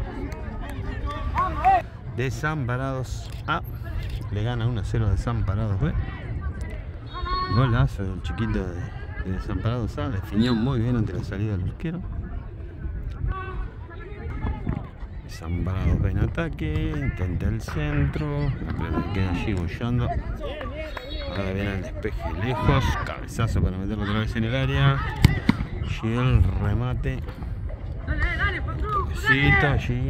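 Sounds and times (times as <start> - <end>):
voices shouting: 0.0 - 1.9, 6.0 - 10.8, 20.1 - 23.2
low rumble on microphone: 0.0 - 20.9.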